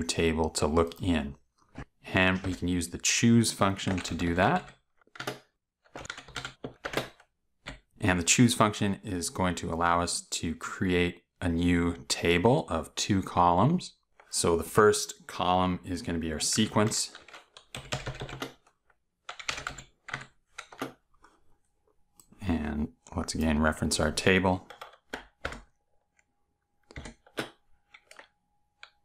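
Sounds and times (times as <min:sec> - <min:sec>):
computer keyboard keystrokes: 0:03.8 - 0:07.8, 0:16.8 - 0:18.7, 0:19.3 - 0:21.0, 0:24.6 - 0:25.7, 0:26.9 - 0:29.0.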